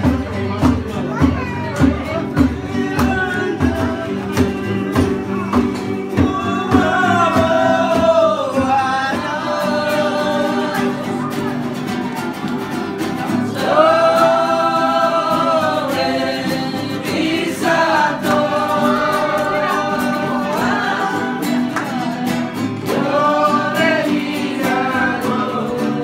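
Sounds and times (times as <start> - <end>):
acoustic guitar strumming: 0.0 - 26.0
group of people singing: 2.1 - 26.0.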